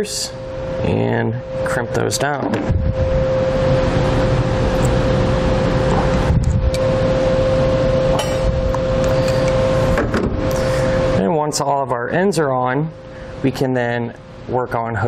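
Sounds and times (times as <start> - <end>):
machine hum: 0.0 - 15.0.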